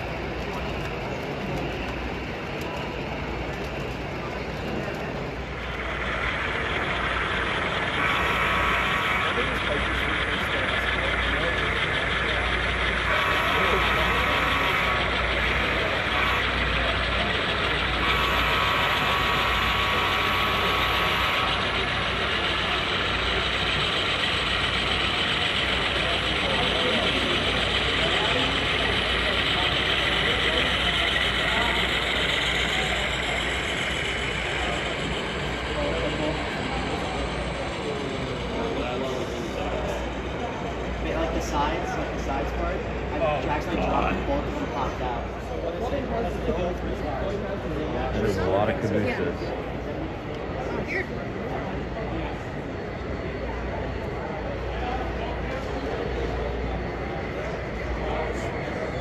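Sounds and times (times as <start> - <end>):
din of a busy hall: 0.0 - 59.0
model locomotive horn blasts: 8.1 - 9.4, 13.0 - 15.2, 16.0 - 16.7, 18.0 - 21.7.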